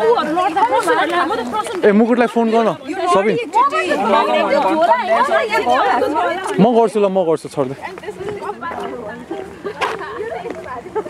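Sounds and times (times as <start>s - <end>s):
indistinct chatter of voices: 0.0s - 11.0s.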